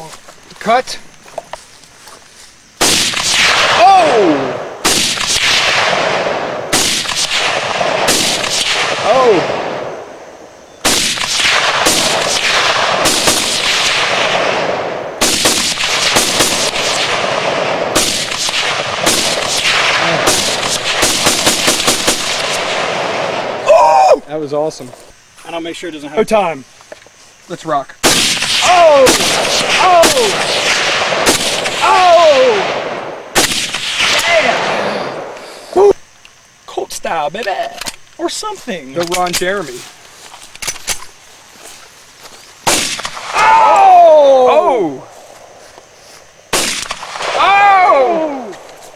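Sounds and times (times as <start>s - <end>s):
faint outdoor background: 0.0s - 48.9s
rifle shots with rolling echo: 2.8s - 23.6s, 28.0s - 31.8s, 32.4s - 35.4s, 42.6s - 43.4s, 46.5s - 47.4s.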